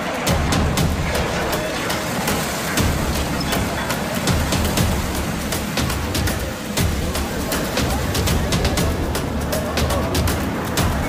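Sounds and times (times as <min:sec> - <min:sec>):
rushing water: 0:00.0 - 0:11.0
heavy low rumble: 0:00.1 - 0:11.0.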